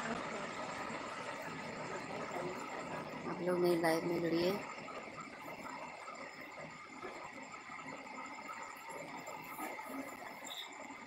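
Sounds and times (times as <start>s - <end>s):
thin steady tones: 0.0s - 11.0s.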